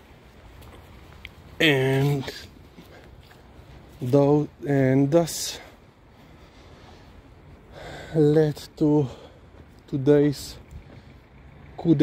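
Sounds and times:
faint breathing: 5.5 - 8.4, 9.0 - 9.8, 10.8 - 11.4.

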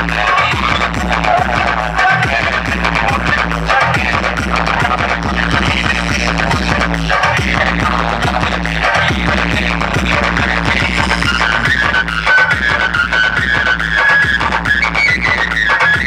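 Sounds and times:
loud dance music with heavy bass: 0.0 - 16.0.

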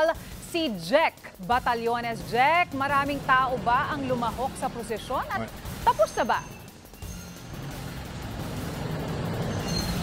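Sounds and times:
faint music: 0.0 - 10.0
low steady street rumble: 0.0 - 10.0.

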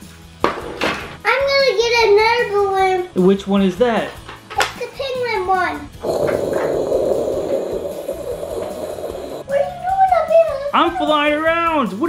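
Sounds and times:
rough growling animal noise: 6.0 - 9.4.

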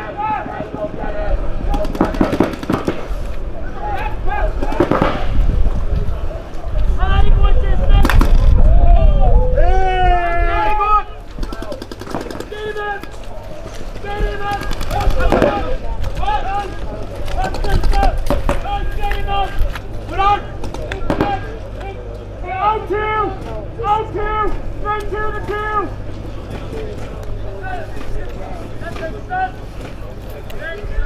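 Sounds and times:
players shouting: 0.0 - 5.4, 6.4 - 31.0
heavy low rumble: 0.0 - 12.6
paintball guns firing rapidly: 1.7 - 3.2, 4.6 - 5.4, 11.4 - 12.8, 14.2 - 16.2, 17.3 - 18.7, 20.6 - 21.6.

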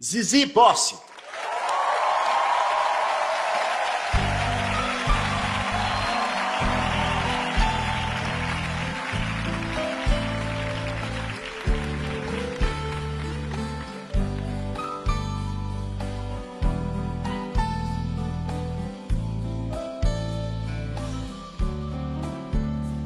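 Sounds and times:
audience applause: 1.1 - 14.6
live band playing: 4.1 - 18.1.

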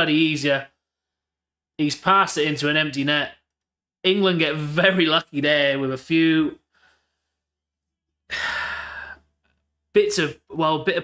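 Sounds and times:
man sighing heavily: 8.3 - 9.3.

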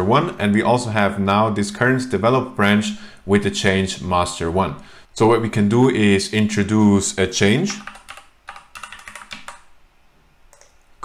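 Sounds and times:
keyboard keystrokes: 7.8 - 9.6.

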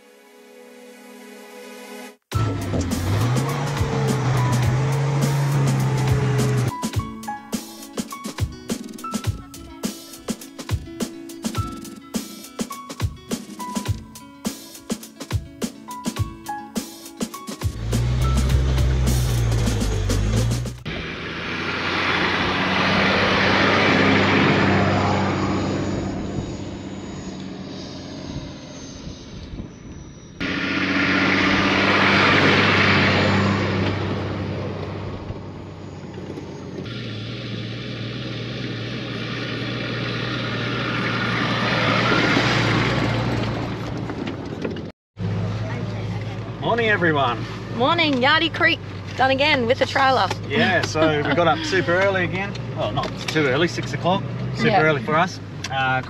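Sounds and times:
vehicle engine drone: 2.3 - 7.1, 17.6 - 56.0
tyre and road noise: 2.3 - 7.2, 17.6 - 28.8, 29.7 - 56.0.

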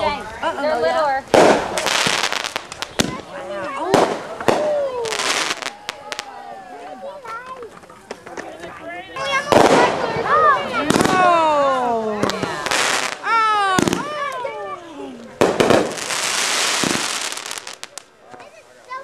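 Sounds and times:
fireworks bangs: 1.2 - 6.5, 9.2 - 14.4, 15.4 - 18.6
hissing crackle of fireworks: 1.2 - 6.6, 9.2 - 11.5, 12.2 - 14.6, 15.3 - 19.0
voices whooping and calling out: 3.2 - 7.8, 8.6 - 16.2.

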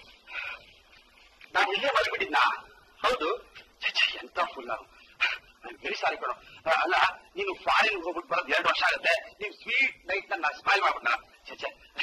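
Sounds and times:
man speaking excitedly: 1.6 - 4.9, 5.6 - 12.0.

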